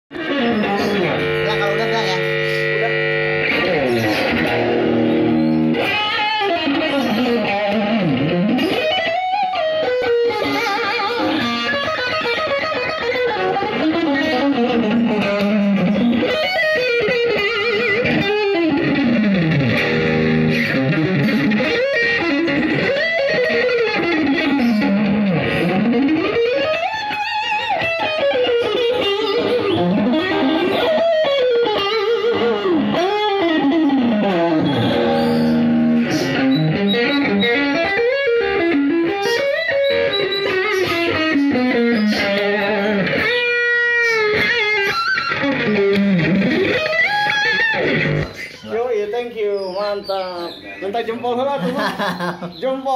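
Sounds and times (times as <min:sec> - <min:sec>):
electric guitar fast lead runs: 0:00.1 - 0:48.6.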